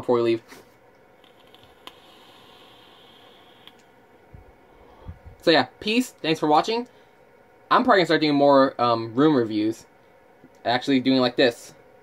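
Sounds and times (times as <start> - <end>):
vape coil sizzling: 1.2 - 3.9
person exhaling softly: 4.7 - 5.4.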